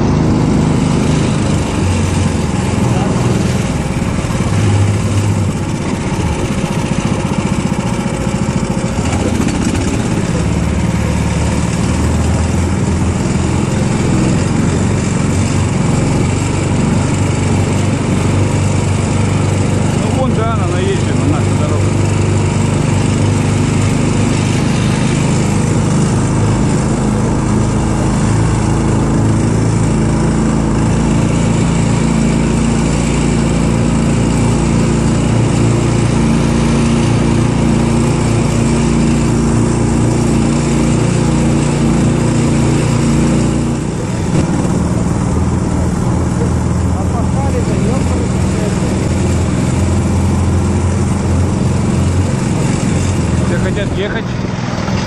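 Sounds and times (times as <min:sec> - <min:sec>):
off-road vehicle engine running: 0:00.0 - 0:55.0.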